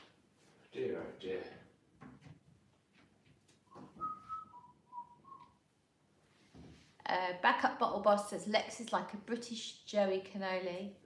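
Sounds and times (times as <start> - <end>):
person whistling softly: 3.7 - 5.6.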